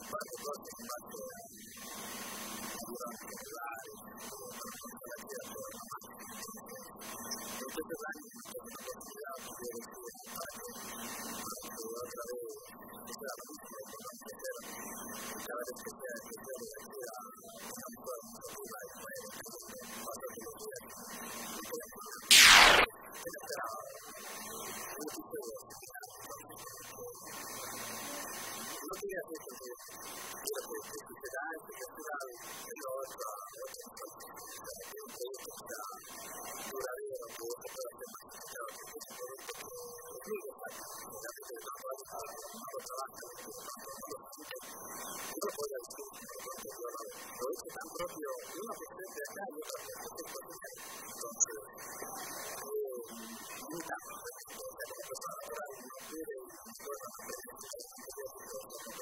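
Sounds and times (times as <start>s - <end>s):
steady background noise: 22.3s - 22.9s
steady hiss: 22.3s - 22.9s.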